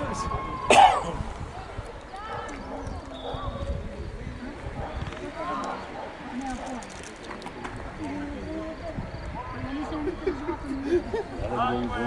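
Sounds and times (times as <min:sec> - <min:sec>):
distant shouts and calls: 0:00.0 - 0:06.7.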